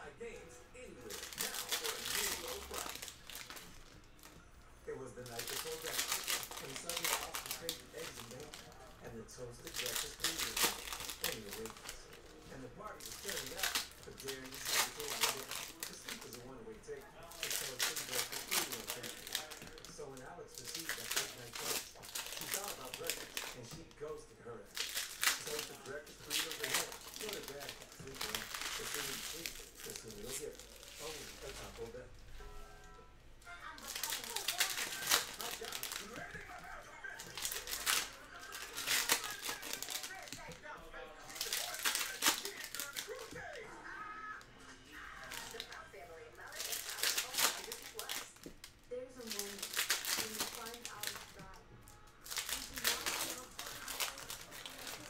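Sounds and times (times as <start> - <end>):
foil wrappers tearing and crinkling: 1.0 - 4.4, 5.2 - 32.0, 33.7 - 43.6, 45.0 - 51.6, 52.2 - 55.0.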